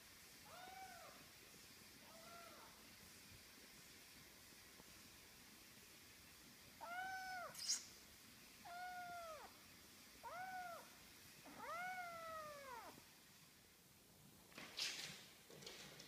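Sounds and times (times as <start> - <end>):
kitten meowing: 0.5 - 1.2, 6.8 - 7.8, 8.6 - 9.5, 10.2 - 10.9, 11.5 - 13.0.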